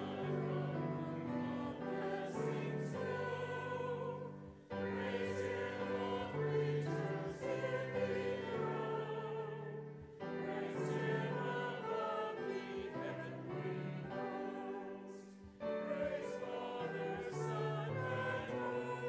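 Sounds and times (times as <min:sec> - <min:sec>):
church choir singing: 0:00.0 - 0:19.0
piano accompaniment: 0:00.0 - 0:19.0.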